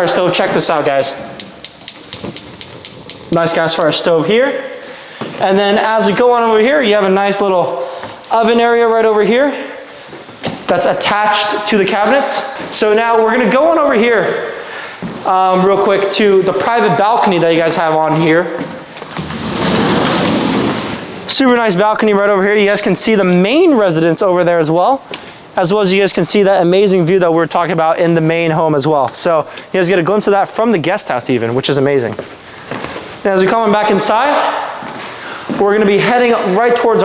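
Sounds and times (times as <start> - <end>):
gas igniter clicking: 1.4 - 4.0
sliding glass door opening: 19.1 - 21.2.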